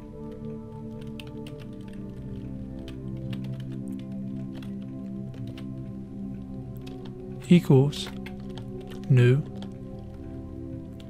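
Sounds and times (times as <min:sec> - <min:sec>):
soft background music: 0:00.0 - 0:11.0
computer keyboard typing: 0:00.8 - 0:05.7, 0:07.8 - 0:10.1.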